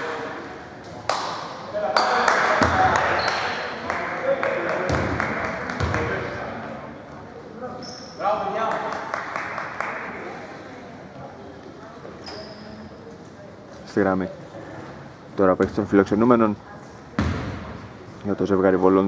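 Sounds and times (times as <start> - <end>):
players' voices echoing: 0.0 - 12.1
short high squeaks: 7.8 - 8.2, 12.2 - 13.0
basketball bouncing on hardwood: 17.2 - 17.6.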